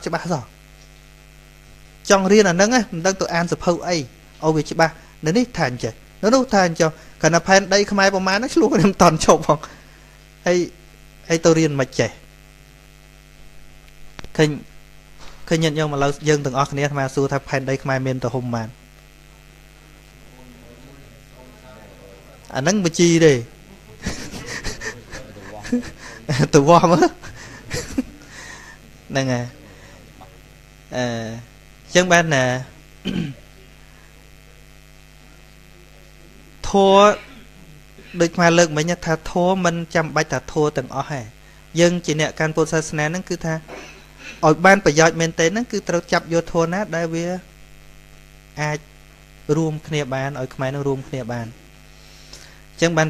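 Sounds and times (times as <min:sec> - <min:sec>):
electrical hum: 0:00.0 - 0:53.0
man's voice: 0:20.4 - 0:28.0.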